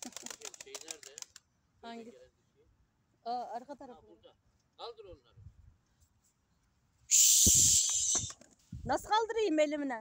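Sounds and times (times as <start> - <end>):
pigeon wings flapping: 0.0 - 1.4.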